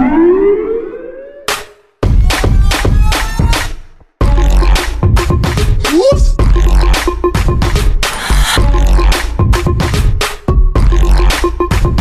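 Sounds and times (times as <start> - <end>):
siren-like rising tone: 0.0 - 1.7.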